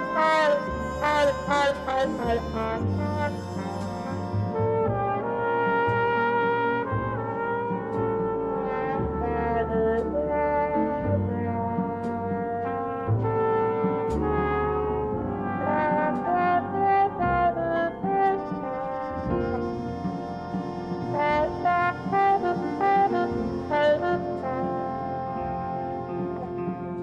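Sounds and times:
jazz band accompaniment: 0.0s - 27.0s
muted trombone solo: 0.0s - 27.0s.

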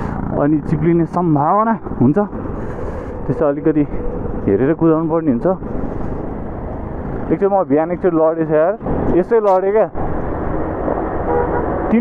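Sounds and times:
motorcycle engine running: 0.0s - 2.7s
motorcycle wind and road noise: 0.0s - 12.0s.

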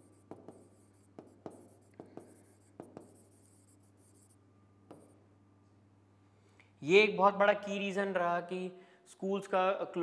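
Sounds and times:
pen scratching on board: 0.0s - 5.2s
pen tapping on board: 0.1s - 3.3s, 4.9s - 5.2s.

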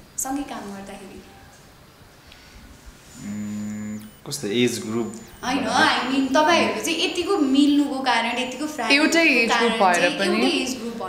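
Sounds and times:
man humming: 3.2s - 4.1s, 5.3s - 6.8s.

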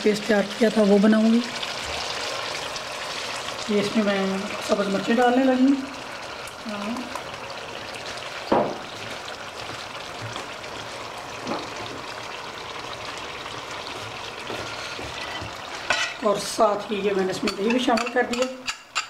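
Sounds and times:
food sizzling in a steel pot: 0.0s - 19.0s
knock against a pot: 8.5s - 8.8s
metal spatula scraping: 14.6s - 16.2s.

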